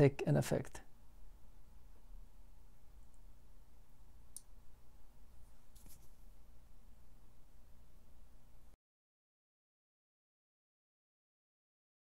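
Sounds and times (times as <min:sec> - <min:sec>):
faint low hum: 0:00.0 - 0:08.8.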